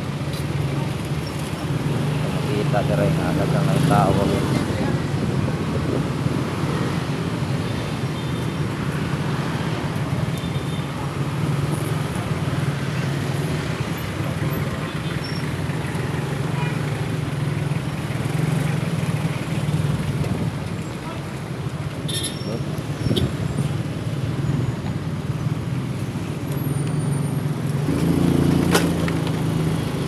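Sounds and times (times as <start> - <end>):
road and traffic noise: 0.0 - 30.0.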